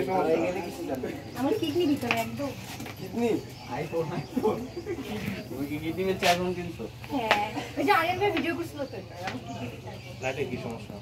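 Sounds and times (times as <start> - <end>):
indistinct chatter of people: 0.0 - 11.0.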